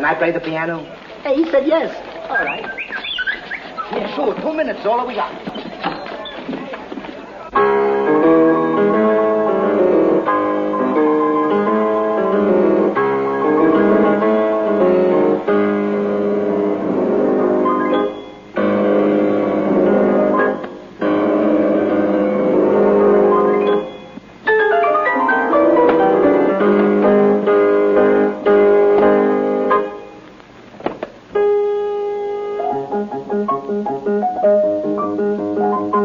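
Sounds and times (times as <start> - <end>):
solo piano chords: 7.5 - 30.2, 31.2 - 36.0.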